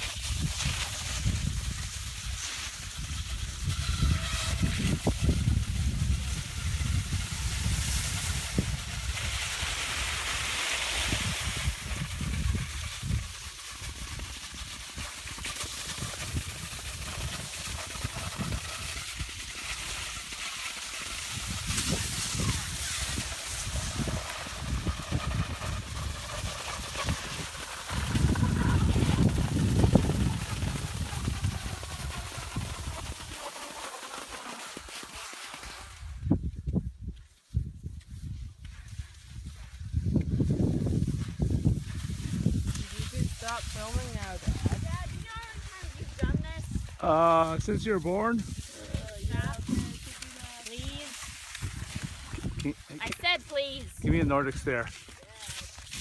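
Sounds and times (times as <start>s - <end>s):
wind rumble on microphone: 0.0s - 20.4s, 21.0s - 33.4s, 35.9s - 56.0s
skis sliding in snow: 0.0s - 56.0s.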